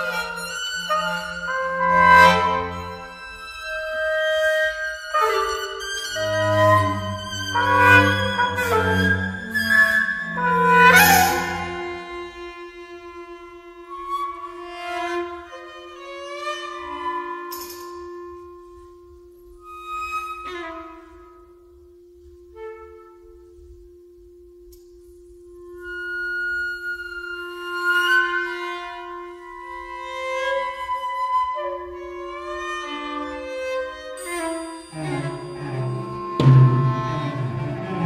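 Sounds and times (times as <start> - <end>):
chamber ensemble playing: 4.5 - 14.6, 31.7 - 38.0.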